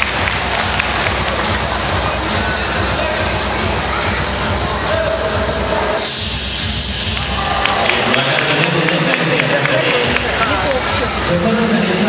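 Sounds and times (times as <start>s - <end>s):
show music with steady beat: 0.0s - 7.8s, 9.2s - 12.0s.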